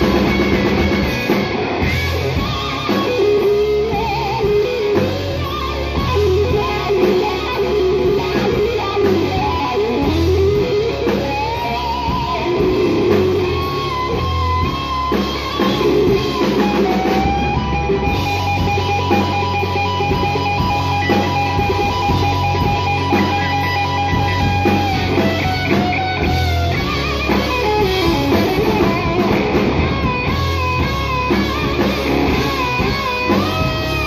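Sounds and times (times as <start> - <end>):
bass guitar: 0.0 - 34.0
drums: 0.0 - 34.0
electric guitar solo: 0.0 - 34.0.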